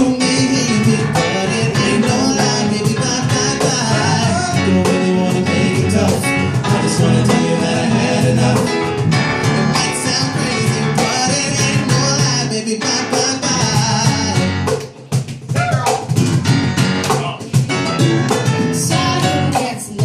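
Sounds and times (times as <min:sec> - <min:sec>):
man singing into microphone: 0:00.0 - 0:08.8, 0:09.8 - 0:14.6
live pop-rock band playing: 0:00.0 - 0:20.0.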